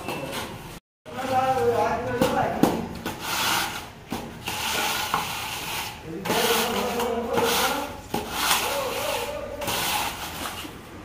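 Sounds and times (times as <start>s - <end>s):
metal straightedge scraping concrete: 3.0s - 10.7s.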